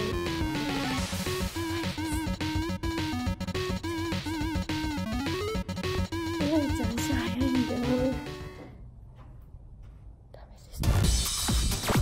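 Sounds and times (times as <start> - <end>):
electronic dance music: 0.0 - 8.5.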